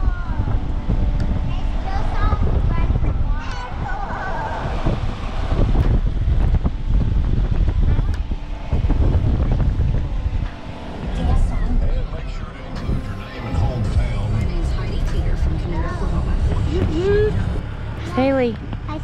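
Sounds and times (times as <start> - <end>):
faint voices talking: 0.0 - 19.0
vehicle road and wind rumble: 0.0 - 19.0.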